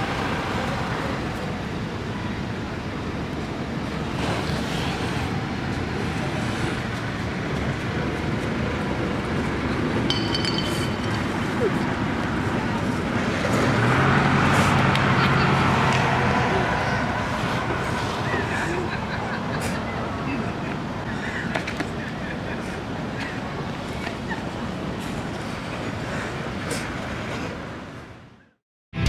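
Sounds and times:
road train engine humming: 0.0 - 28.0
outdoor rushing noise: 0.0 - 28.4.

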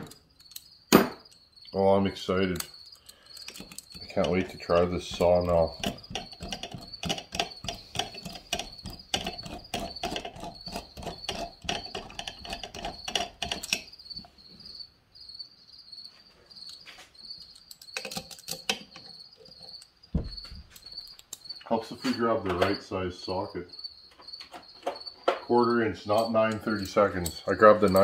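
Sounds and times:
metallic ratchet clicks: 2.5 - 14.3, 26.1 - 28.0.

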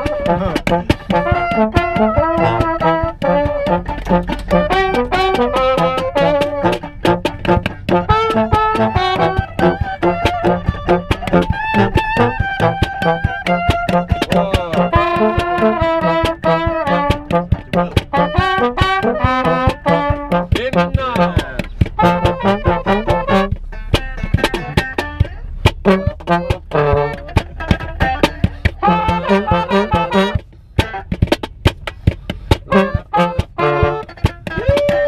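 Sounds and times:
brass band playing: 0.0 - 31.2, 32.6 - 35.0
fast percussive beat: 0.0 - 35.0.

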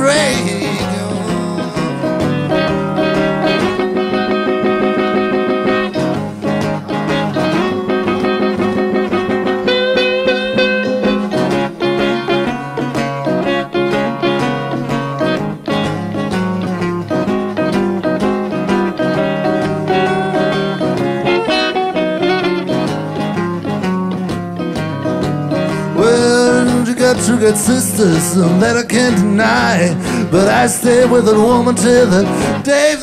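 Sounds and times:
person singing: 0.0 - 4.5, 25.7 - 33.0
acoustic blues guitar picking: 0.0 - 33.0.

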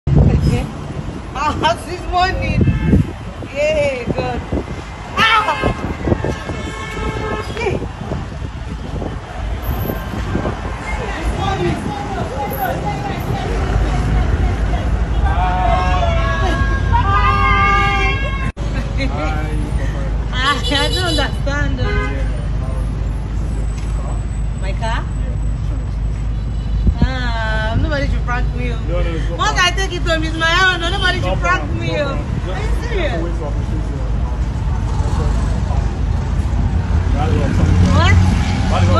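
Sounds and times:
street noise: 0.0 - 38.9
voices calling out: 1.3 - 36.0
car horn: 2.4 - 3.2, 5.2 - 7.9, 20.4 - 22.4
scattered voices: 10.7 - 18.3.

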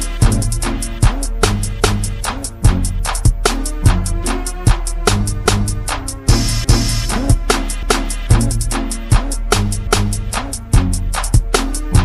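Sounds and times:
slowed hip-hop beat: 0.0 - 12.0.

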